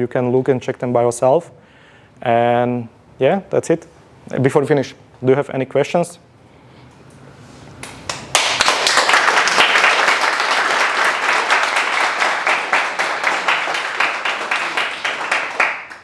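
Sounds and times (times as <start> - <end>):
audience applauding: 7.8 - 16.0.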